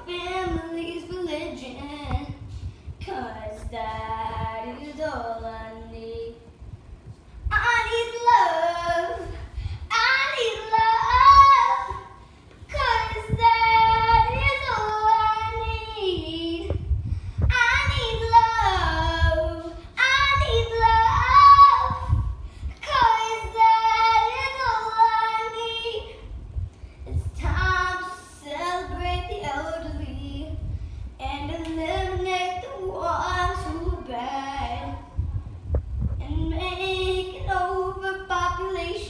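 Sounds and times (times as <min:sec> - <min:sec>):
girl singing unaccompanied: 0:00.0 - 0:39.0.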